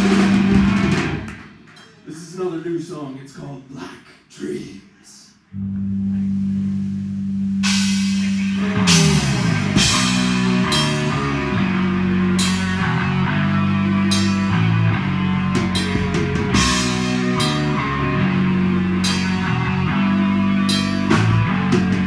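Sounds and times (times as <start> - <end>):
low guitar and bass notes: 0.0 - 1.4, 5.5 - 22.0
live metal band playing: 0.0 - 2.4, 5.8 - 22.0.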